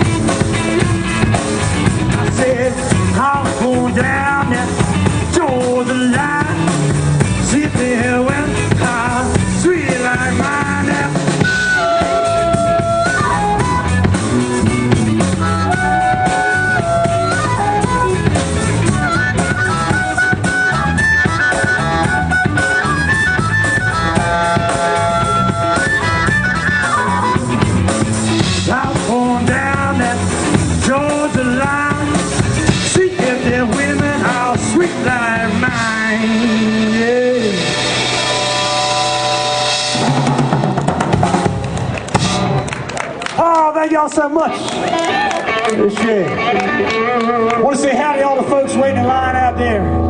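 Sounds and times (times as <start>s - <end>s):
steady beat: 0.0s - 42.7s
electric guitar: 0.0s - 43.6s, 44.5s - 50.0s
harmonica played into a microphone: 8.5s - 30.5s, 31.1s - 40.2s, 45.0s - 50.0s.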